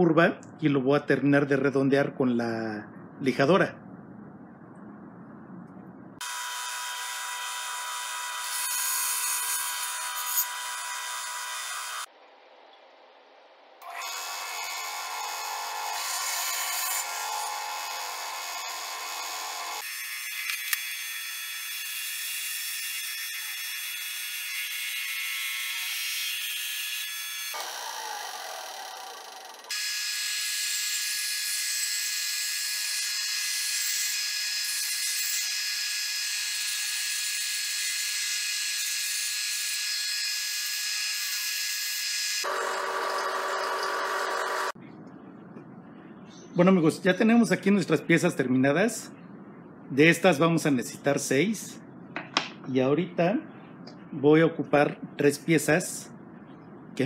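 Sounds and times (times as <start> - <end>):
bandsaw cutting wood: 6.2 - 12.1, 13.8 - 44.8
belt and disc sander running: 42.4 - 44.8.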